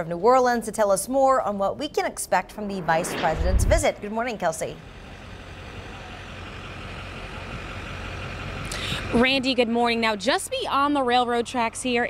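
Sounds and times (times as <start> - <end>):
distant vehicle traffic rumble: 0.0 - 12.0.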